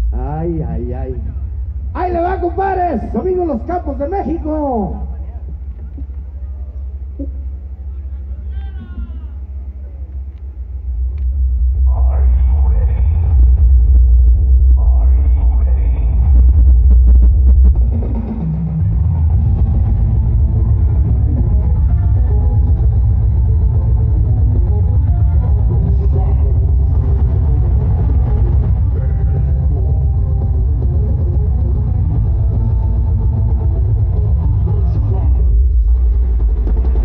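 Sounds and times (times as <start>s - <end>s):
booming bass: 0.0s - 37.0s
drum kit: 16.1s - 37.0s.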